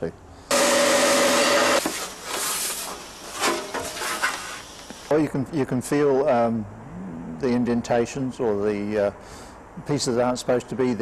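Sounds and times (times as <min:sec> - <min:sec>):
power grinder grinding metal: 0:00.5 - 0:01.9.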